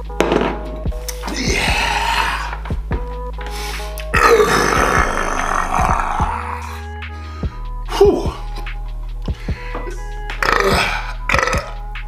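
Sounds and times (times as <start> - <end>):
man burping loudly: 4.1 - 6.8, 10.4 - 11.9.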